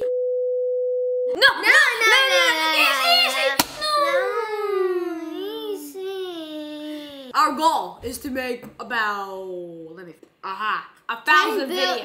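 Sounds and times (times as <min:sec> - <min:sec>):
children's voices and laughter: 0:01.3 - 0:07.6, 0:11.4 - 0:12.0.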